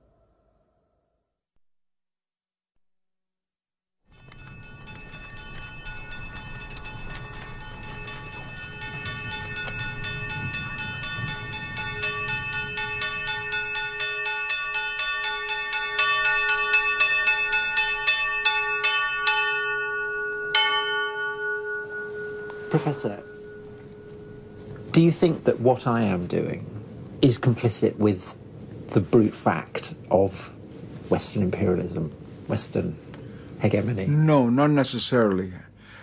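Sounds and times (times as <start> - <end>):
bells ringing: 4.1 - 26.1.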